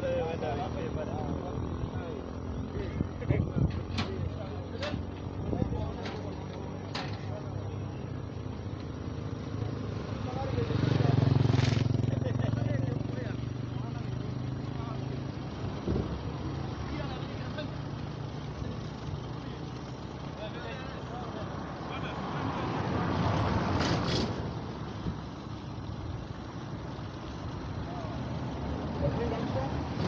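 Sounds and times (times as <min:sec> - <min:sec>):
low steady rumble: 0:00.0 - 0:21.8
indistinct voices talking: 0:00.0 - 0:30.0.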